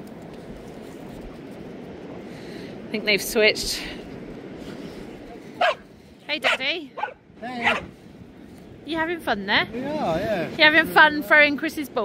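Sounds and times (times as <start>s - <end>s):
dog yipping: 5.6s - 5.8s, 6.4s - 7.9s.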